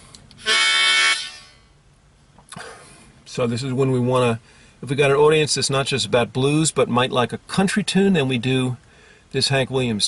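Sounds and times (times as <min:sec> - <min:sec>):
harmonica chord: 0:00.4 - 0:01.8.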